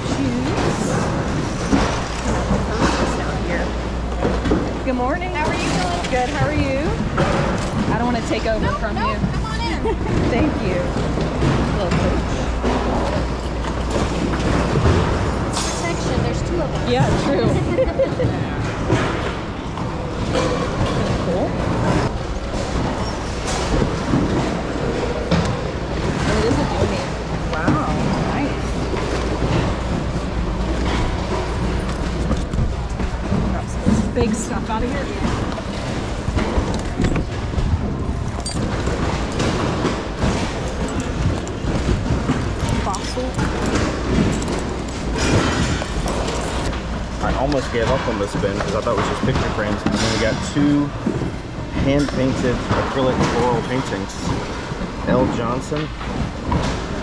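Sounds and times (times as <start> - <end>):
bags rustling and clattering: 0.0 - 57.0.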